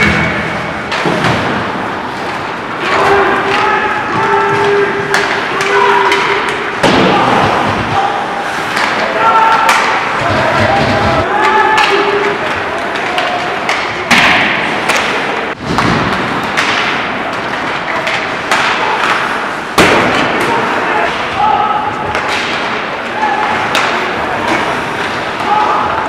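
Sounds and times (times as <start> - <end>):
hockey sticks and puck knocking: 0.0 - 26.0.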